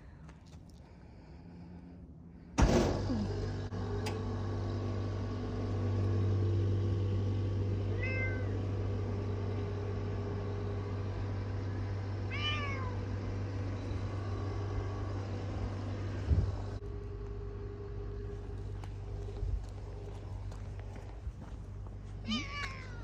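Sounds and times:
steady low hum: 0.0 - 23.0
thump: 2.6 - 3.1
cat meowing: 7.9 - 8.5, 12.3 - 13.0, 22.2 - 23.0.

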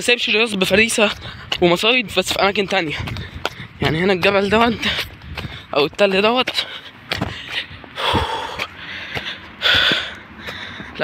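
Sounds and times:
footsteps on gravel: 0.0 - 11.0
man breathing hard: 1.1 - 1.6, 2.9 - 3.8, 4.7 - 5.8, 6.5 - 11.0.

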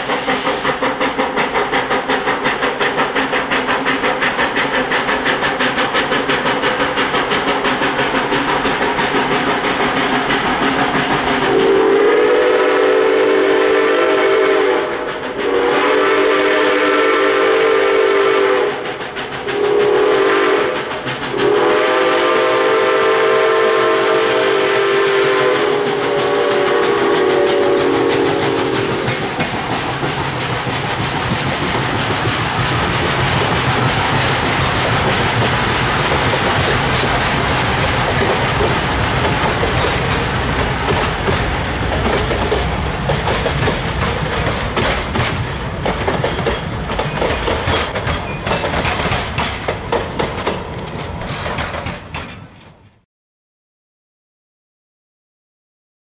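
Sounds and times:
steam locomotive exhaust beats: 0.0 - 53.0
train wheel clatter: 0.0 - 53.0
steam whistle blasts: 11.4 - 29.2.

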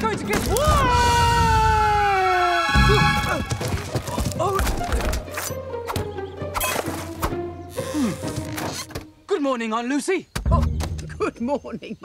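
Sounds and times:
film music: 0.0 - 9.6.

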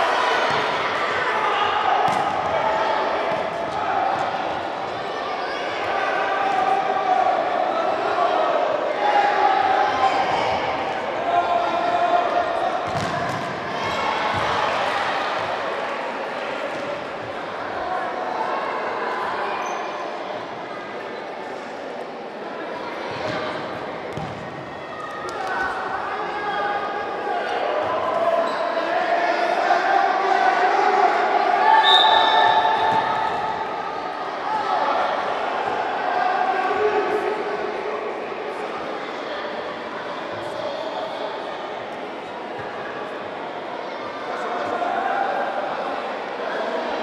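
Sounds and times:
echoing indistinct shouting: 0.0 - 19.7.

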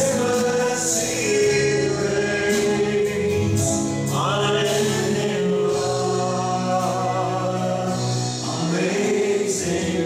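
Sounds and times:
acoustic guitar: 0.0 - 10.0
drums: 0.0 - 10.0
man singing lead: 0.0 - 10.0
voices singing along: 0.0 - 10.0.

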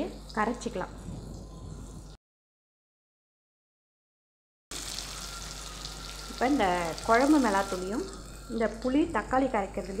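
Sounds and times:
vegetables sizzling in oil: 4.7 - 10.0.

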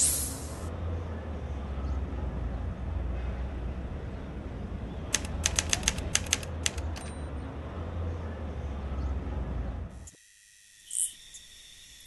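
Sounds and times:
typewriter keys clacking: 5.1 - 7.1.

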